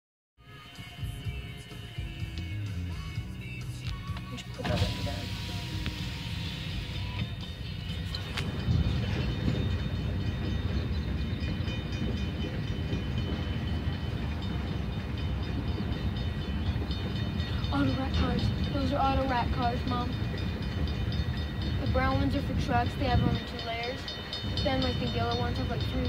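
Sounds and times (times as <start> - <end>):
train wheels rumbling on rails: 1.2 - 26.0.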